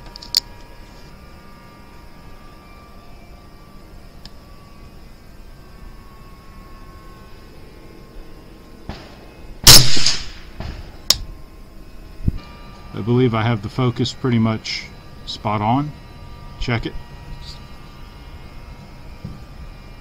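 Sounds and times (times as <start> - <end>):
faint steady background noise: 0.0 - 20.0
rifle shot: 9.0 - 10.9.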